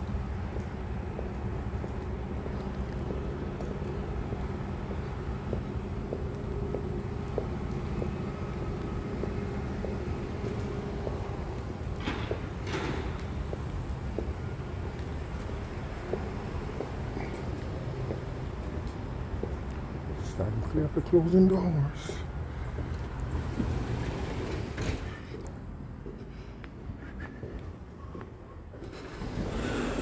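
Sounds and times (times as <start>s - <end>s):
light footsteps: 0.0s - 20.8s, 22.0s - 30.0s
low outdoor rumble: 0.0s - 30.0s.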